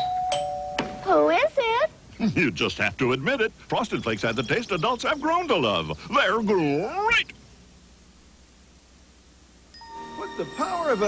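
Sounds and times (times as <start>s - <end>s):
faint tape hiss: 0.0s - 11.0s
chime-like music tones: 9.7s - 11.0s.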